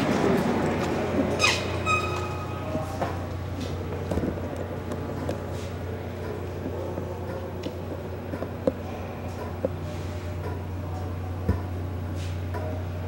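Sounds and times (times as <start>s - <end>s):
steady low hum: 0.0s - 13.0s
door squeaking: 1.4s - 2.6s.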